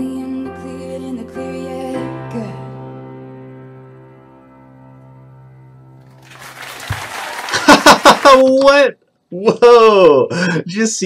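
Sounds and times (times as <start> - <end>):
audience applauding: 6.1 - 8.8.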